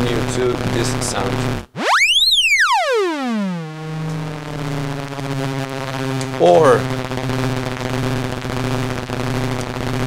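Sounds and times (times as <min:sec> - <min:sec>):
buzzy synthesizer tone gliding down: 0:00.0 - 0:10.0.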